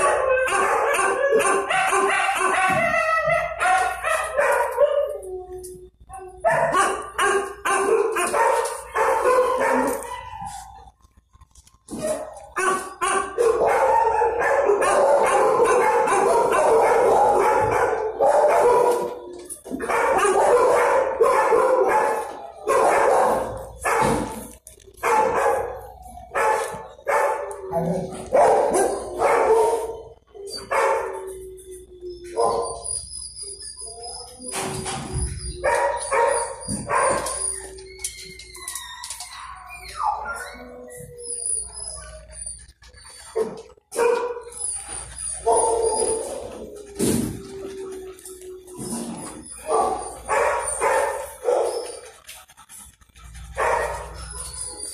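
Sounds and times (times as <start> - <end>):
dogs barking: 0.0 - 11.1, 11.8 - 38.5, 39.1 - 54.9
dogs whining or howling: 0.0 - 54.9.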